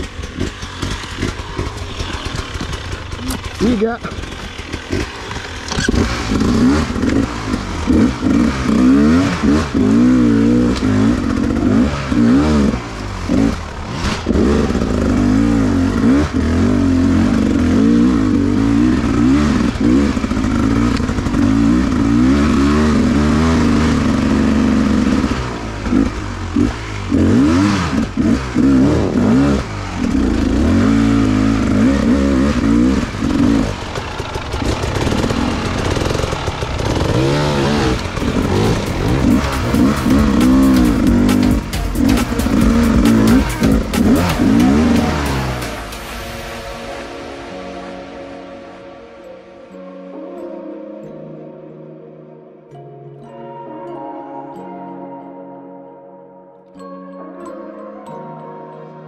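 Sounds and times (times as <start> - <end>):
bike clattering: 0.0 - 7.4
dirt bike engine revving: 0.0 - 46.9.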